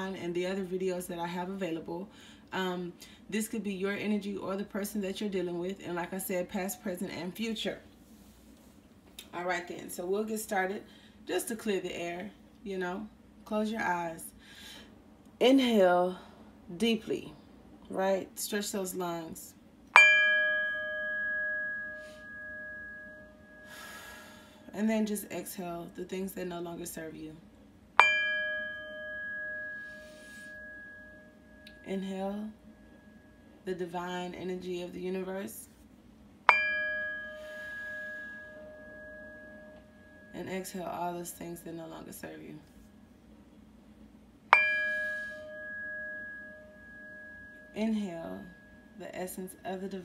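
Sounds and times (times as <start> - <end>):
metal chime ringing: 20.0 - 24.4, 28.0 - 33.6, 36.5 - 41.0, 44.5 - 49.0.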